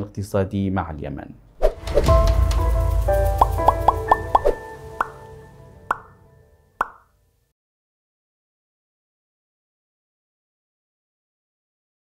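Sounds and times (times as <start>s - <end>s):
music: 1.6s - 7.5s
popping sound effects: 3.4s - 5.2s, 5.9s - 6.2s, 6.8s - 7.1s.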